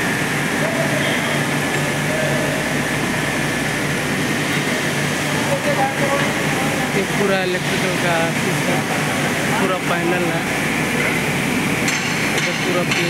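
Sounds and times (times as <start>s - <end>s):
rolling mill machinery hum: 0.0s - 13.0s.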